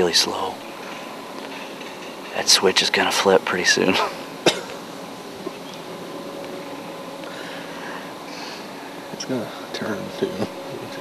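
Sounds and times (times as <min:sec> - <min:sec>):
faint steady hum: 0:00.0 - 0:11.0
steady background hiss: 0:00.0 - 0:11.0.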